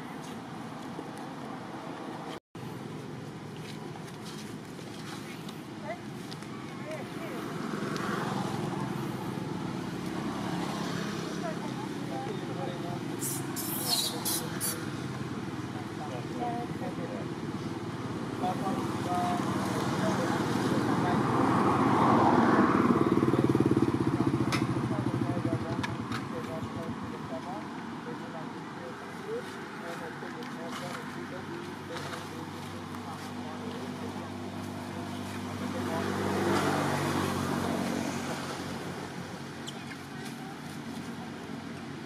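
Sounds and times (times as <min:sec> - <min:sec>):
vehicle engine running: 0:02.6 - 0:13.2
people's voices: 0:05.8 - 0:42.0.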